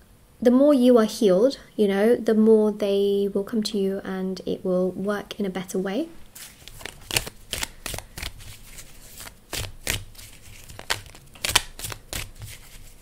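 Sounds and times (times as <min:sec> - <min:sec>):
cards being shuffled: 0:06.4 - 0:13.0.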